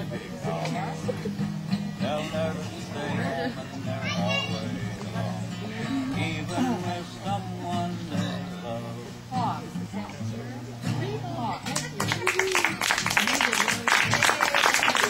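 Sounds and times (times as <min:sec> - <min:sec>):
acoustic guitar strumming chords: 0:00.0 - 0:12.3
people's voices: 0:00.0 - 0:15.0.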